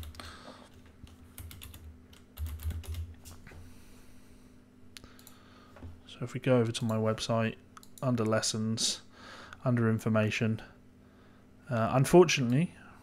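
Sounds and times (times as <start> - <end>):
typing on computer keyboard: 1.0 - 3.1.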